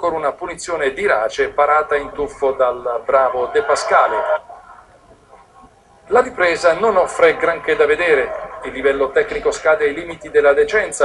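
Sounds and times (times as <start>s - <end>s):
man narrating: 0.0s - 4.5s, 6.1s - 11.0s
faint background noise: 0.0s - 11.0s.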